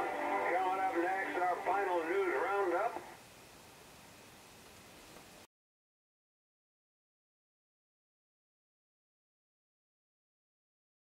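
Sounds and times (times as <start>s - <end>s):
faint hiss: 0.0s - 5.5s
voice through radio speaker: 0.4s - 3.2s.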